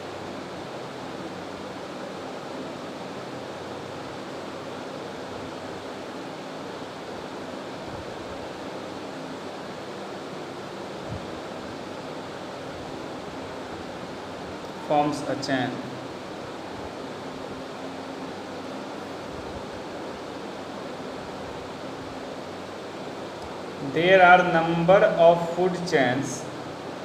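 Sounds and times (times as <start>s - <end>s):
steady background hiss: 0.0s - 27.0s.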